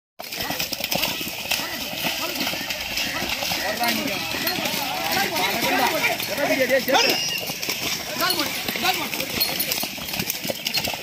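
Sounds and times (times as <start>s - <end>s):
men calling and shouting: 0.2s - 10.7s
hoof strikes in wet mud: 0.2s - 11.0s.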